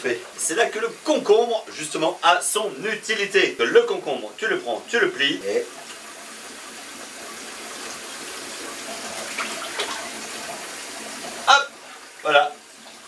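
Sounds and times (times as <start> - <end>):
shower water running into bathtub: 0.0 - 13.0.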